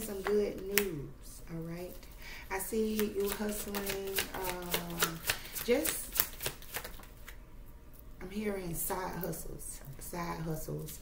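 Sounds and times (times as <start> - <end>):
cards being shuffled: 2.8 - 7.4.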